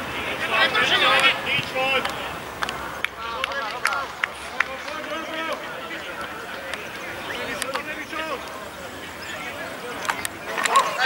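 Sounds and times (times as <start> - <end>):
open-air background noise: 0.0 - 11.0
players shouting: 0.0 - 11.0.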